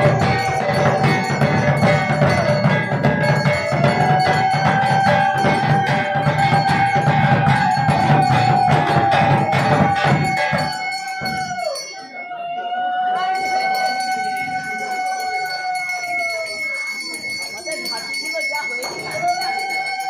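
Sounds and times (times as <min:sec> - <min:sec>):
barrel drums beaten fast: 0:00.0 - 0:11.9.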